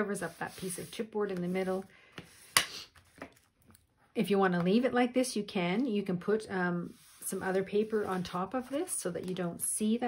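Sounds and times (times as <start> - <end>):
hands smoothing paper: 0.0 - 3.2, 6.3 - 9.4.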